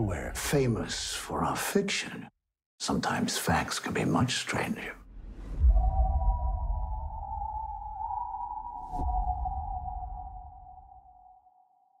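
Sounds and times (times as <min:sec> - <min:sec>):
deep rumble: 0:05.0 - 0:11.2.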